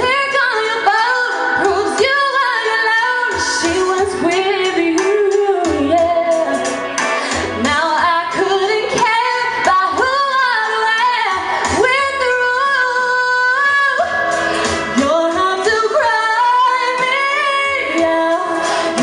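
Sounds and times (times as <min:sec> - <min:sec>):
woman singing pop song: 0:00.0 - 0:19.0.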